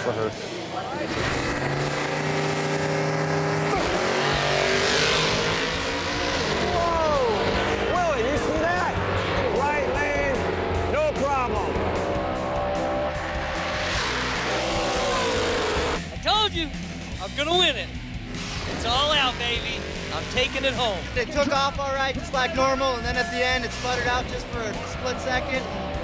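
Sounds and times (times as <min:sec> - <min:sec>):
background music: 0:00.0 - 0:26.0
drag racing car engines at full throttle: 0:00.0 - 0:26.0
people whooping: 0:14.7 - 0:15.6.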